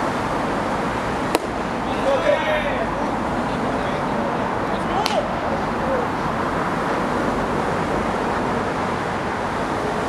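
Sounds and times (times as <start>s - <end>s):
baseball crack: 1.3s - 1.7s, 4.8s - 5.3s
players shouting: 1.3s - 4.0s, 4.7s - 6.1s.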